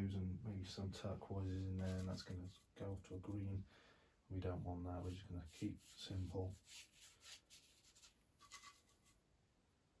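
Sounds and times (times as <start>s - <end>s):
paintbrush strokes on canvas: 4.9s - 9.2s.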